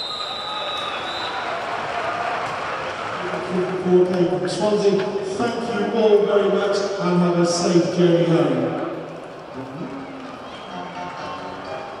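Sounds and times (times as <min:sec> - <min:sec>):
music over public address: 0:08.3 - 0:12.0.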